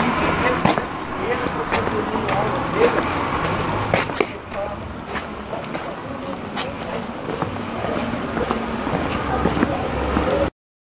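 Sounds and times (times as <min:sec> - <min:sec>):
low rumble: 0:00.0 - 0:10.3
faint murmured voices: 0:00.0 - 0:10.5.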